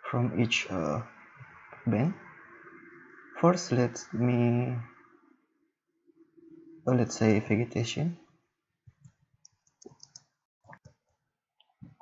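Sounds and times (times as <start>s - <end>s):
computer keyboard typing: 9.5s - 10.2s.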